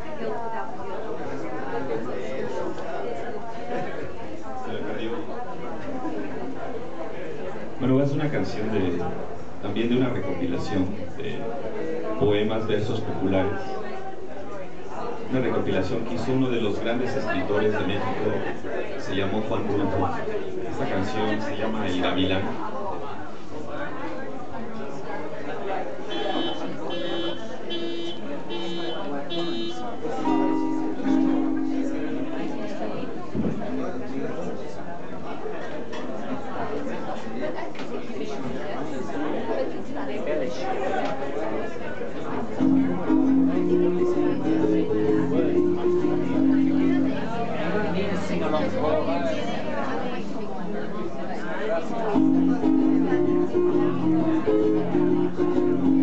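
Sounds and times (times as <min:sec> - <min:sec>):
acoustic guitar plucking: 0:26.1 - 0:34.0, 0:42.4 - 0:50.2, 0:52.0 - 0:56.0
ringing guitar chords: 0:27.1 - 0:33.0, 0:42.6 - 0:49.4.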